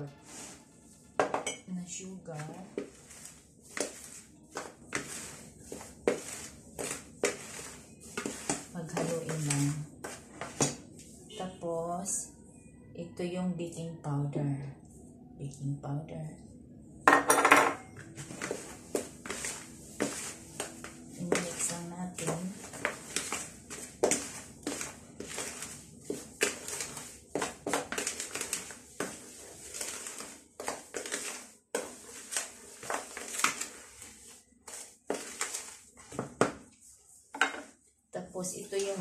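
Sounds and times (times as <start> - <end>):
hand mixing flour in plastic bowl: 0.0 - 1.2, 1.9 - 12.2, 18.0 - 39.0.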